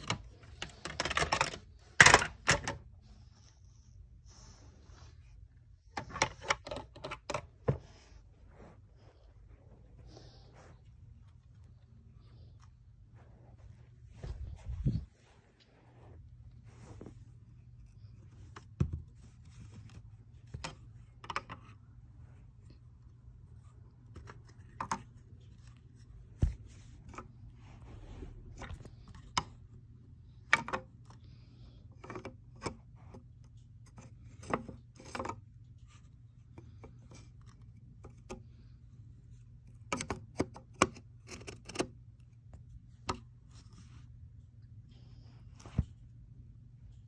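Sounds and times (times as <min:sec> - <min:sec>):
low steady hum: 0:00.0 - 0:47.0.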